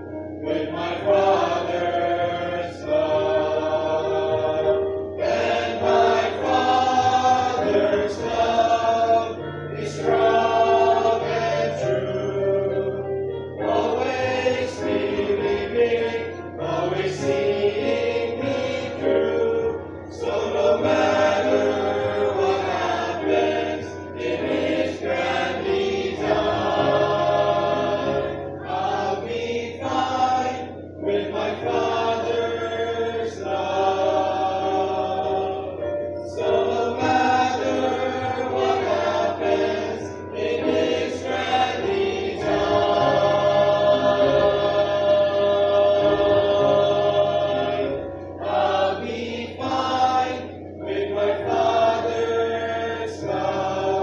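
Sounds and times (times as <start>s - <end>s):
youth choir singing: 0.0s - 54.0s.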